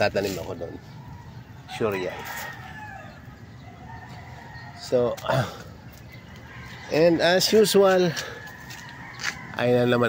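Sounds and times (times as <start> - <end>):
rooster crowing: 1.7 - 4.9, 6.4 - 10.0.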